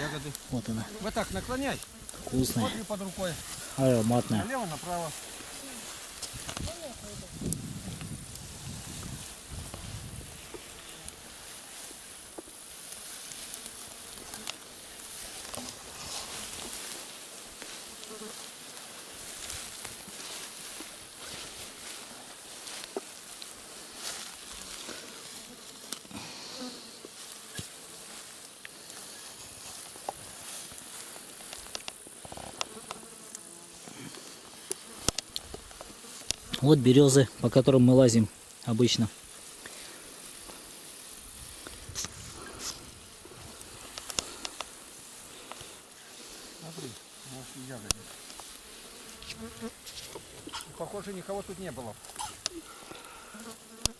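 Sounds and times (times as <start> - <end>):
insects buzzing: 0.0 - 53.9
small clicks and rustles: 5.4 - 26.1, 27.0 - 33.5, 34.1 - 36.6, 41.6 - 45.8.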